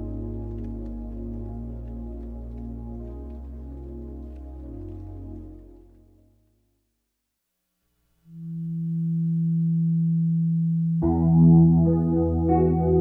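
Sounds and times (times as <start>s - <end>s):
instrumental melody: 8.3s - 13.0s
low synthesizer note: 8.3s - 13.0s.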